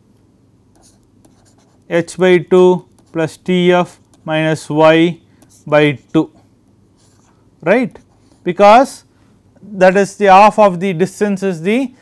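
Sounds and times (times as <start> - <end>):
stylus scratching on tablet: 0.7 - 4.7, 5.4 - 6.4, 7.0 - 8.6.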